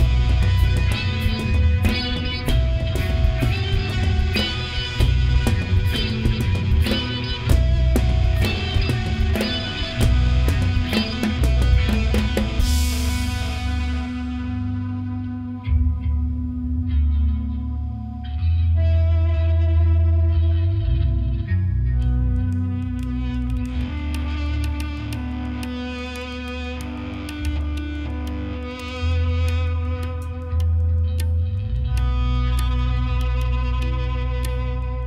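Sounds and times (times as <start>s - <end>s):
drums with cymbal hits: 0.0s - 14.4s
deep bass notes: 0.0s - 35.0s
electric guitar through effects: 0.0s - 35.0s.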